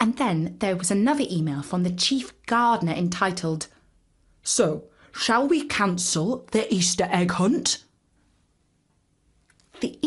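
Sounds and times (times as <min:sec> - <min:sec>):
woman speaking: 0:00.0 - 0:03.8, 0:04.4 - 0:07.9, 0:09.7 - 0:10.0.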